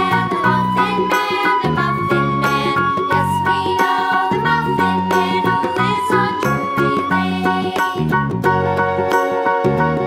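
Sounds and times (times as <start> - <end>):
fast melodic music: 0.0 - 10.0.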